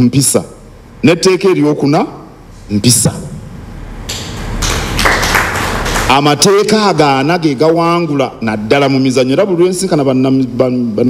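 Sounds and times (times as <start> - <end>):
audience applauding: 4.1 - 6.3.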